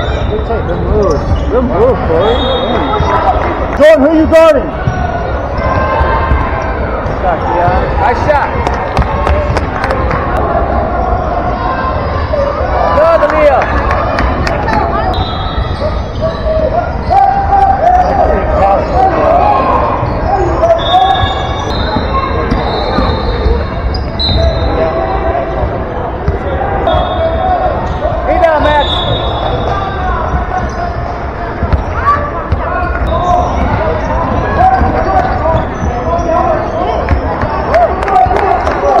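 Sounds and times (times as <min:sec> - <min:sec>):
sneaker squeaks: 0:00.0 - 0:03.3, 0:04.7 - 0:07.9, 0:14.9 - 0:19.3, 0:19.9 - 0:37.7
chatter and shouts of people: 0:00.0 - 0:39.0.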